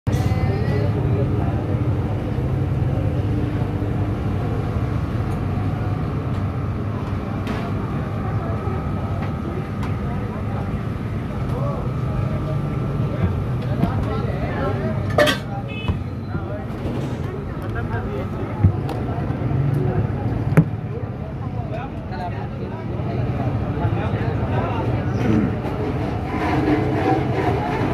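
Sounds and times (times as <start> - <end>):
traffic rumble: 0.1 - 27.9.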